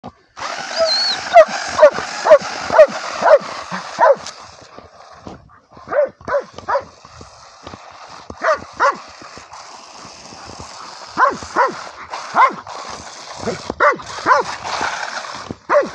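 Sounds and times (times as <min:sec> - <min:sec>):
dog barking excitedly: 0:00.8 - 0:04.3, 0:05.8 - 0:07.0, 0:08.4 - 0:09.1, 0:11.2 - 0:12.7, 0:13.4 - 0:14.6, 0:15.7 - 0:15.9.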